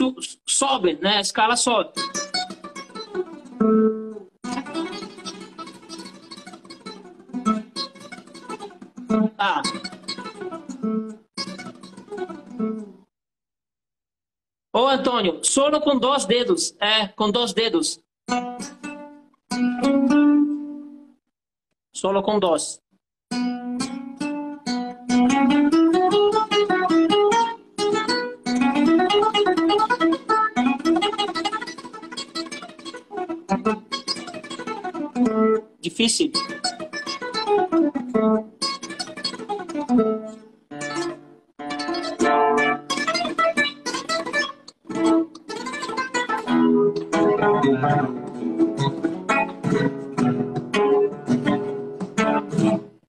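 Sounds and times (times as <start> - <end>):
classical guitar plucked notes: 1.9 - 13.0, 18.3 - 21.1, 23.3 - 53.0.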